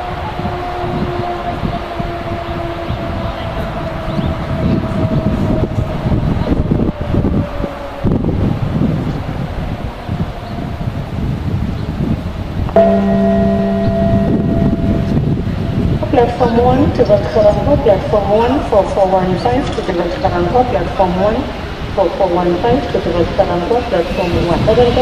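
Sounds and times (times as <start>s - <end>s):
freight train rumble: 0.0s - 25.0s
faint held tone: 12.8s - 16.2s.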